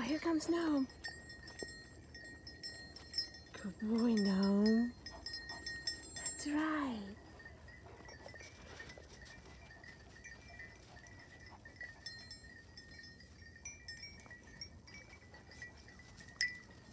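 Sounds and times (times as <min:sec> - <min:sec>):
small bells jingling: 0:00.0 - 0:16.9.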